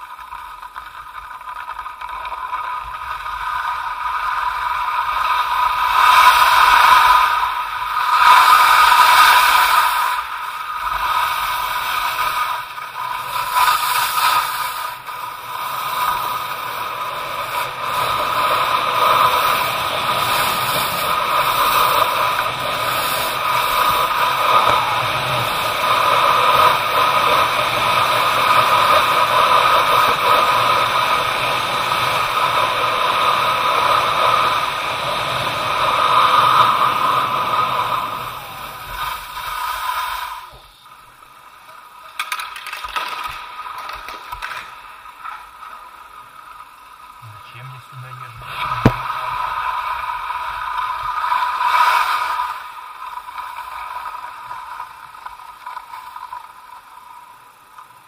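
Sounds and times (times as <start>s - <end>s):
skis scraping over icy snow: 0.0s - 58.0s.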